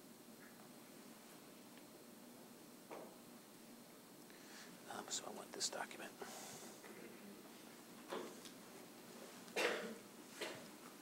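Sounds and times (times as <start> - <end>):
person whispering: 4.8 - 7.1.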